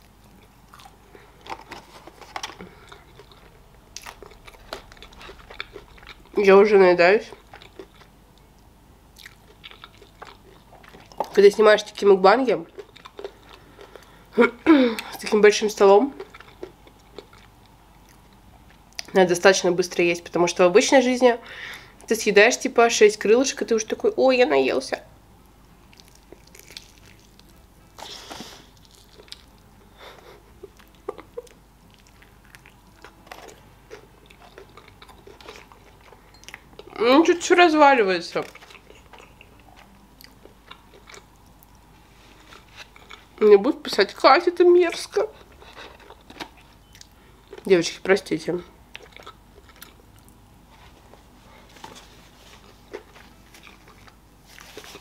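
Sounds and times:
chewing crunches: 0:00.0 - 0:06.4, 0:07.2 - 0:08.5, 0:09.1 - 0:11.4, 0:12.7 - 0:14.2, 0:16.1 - 0:19.1, 0:25.8 - 0:29.6, 0:30.2 - 0:37.0, 0:38.4 - 0:43.4, 0:48.9 - 0:50.4, 0:51.8 - 0:55.0.

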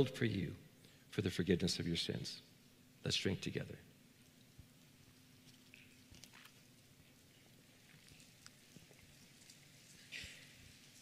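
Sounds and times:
breathy hiss: 0:08.9 - 0:11.0.

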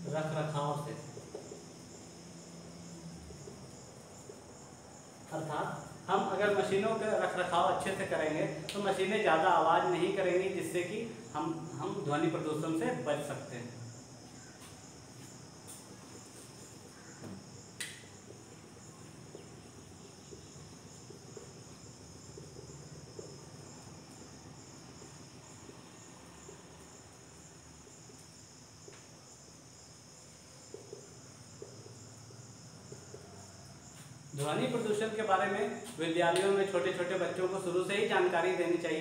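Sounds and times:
crickets trilling: 0:00.0 - 0:39.0
sharp click: 0:17.8 - 0:18.1.

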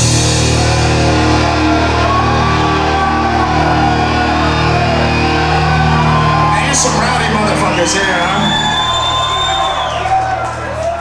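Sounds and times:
live rock band: 0:00.0 - 0:06.9
audience whooping and cheering: 0:00.0 - 0:11.0.

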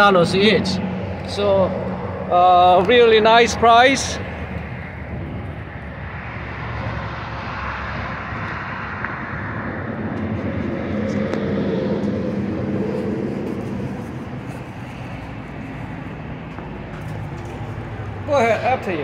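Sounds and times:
vehicle engine passing: 0:00.0 - 0:19.0.

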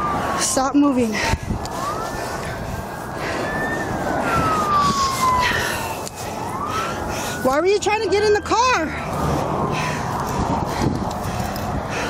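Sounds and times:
police car siren wailing: 0:00.0 - 0:12.0.

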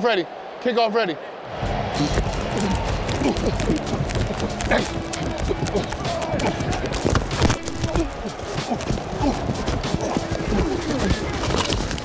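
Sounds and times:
pounding footsteps: 0:01.5 - 0:12.0.

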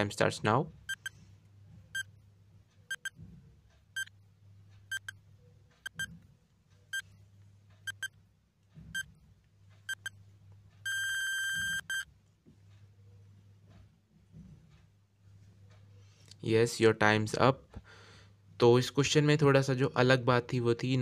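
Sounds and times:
short electronic beeps: 0:02.9 - 0:03.2, 0:05.8 - 0:06.1, 0:07.9 - 0:08.1, 0:10.8 - 0:12.1.

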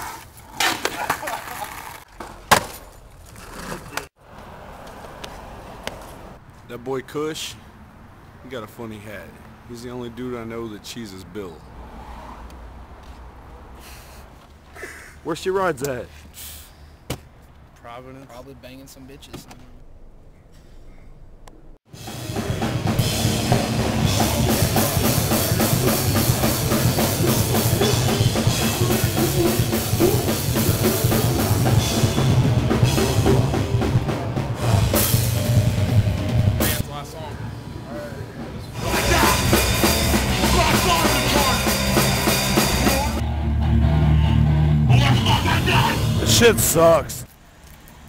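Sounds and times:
heavy rock music with drums: 0:21.9 - 0:36.8, 0:38.7 - 0:46.9.

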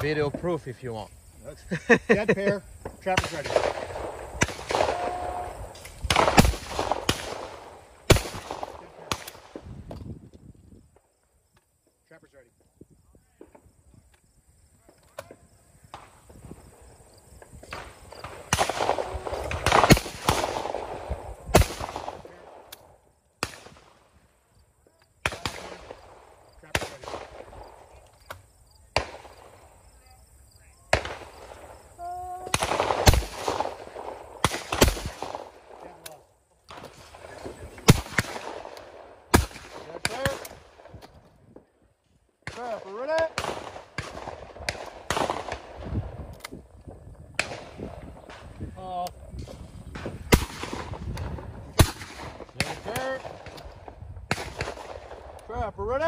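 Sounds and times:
shotgun shots: 0:02.8 - 0:09.7, 0:17.6 - 0:22.8, 0:23.4 - 0:24.0, 0:25.2 - 0:27.9, 0:30.9 - 0:31.8, 0:32.4 - 0:41.0, 0:42.4 - 0:46.0, 0:47.4 - 0:48.5, 0:49.4 - 0:55.4
faint distant gunshots: 0:02.8 - 0:09.9, 0:15.2 - 0:24.2, 0:28.9 - 0:29.7, 0:30.9 - 0:31.8, 0:32.4 - 0:41.7, 0:42.4 - 0:46.2, 0:49.4 - 0:55.4.

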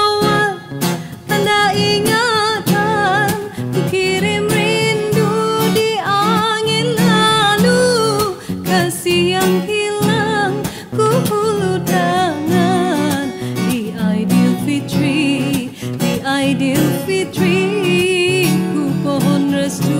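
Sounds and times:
acoustic guitar plucked and strummed: 0:00.0 - 0:19.9
woman singing: 0:00.0 - 0:19.9.

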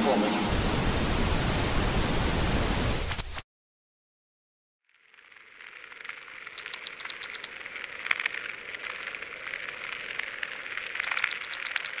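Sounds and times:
rapid clicking: 0:06.5 - 0:12.0
sharp click: 0:06.6 - 0:07.5, 0:11.0 - 0:12.0.

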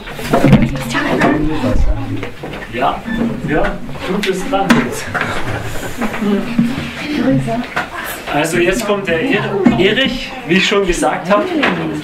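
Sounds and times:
knocks and handling noises: 0:00.0 - 0:08.9
people talking indistinctly: 0:00.4 - 0:12.0.

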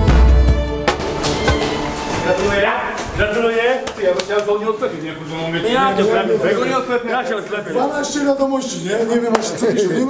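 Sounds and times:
men talking: 0:02.1 - 0:10.0.

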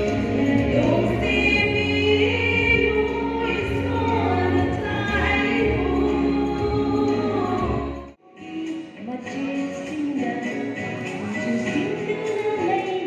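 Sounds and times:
women singing into microphones: 0:00.0 - 0:13.0.

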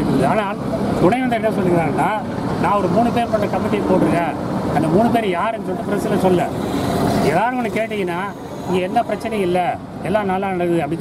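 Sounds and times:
man speaking into microphones: 0:00.0 - 0:06.6, 0:07.2 - 0:11.0.

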